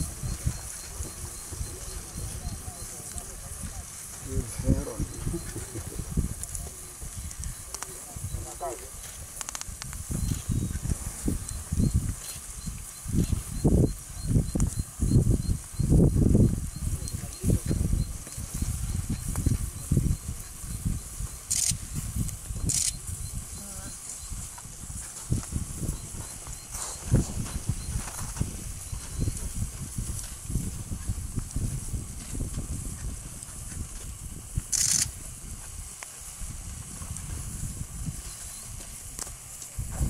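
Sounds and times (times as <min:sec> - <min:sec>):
elephants walking rumbling: 0:00.0 - 0:40.0
wind buffeting microphone: 0:00.0 - 0:40.0.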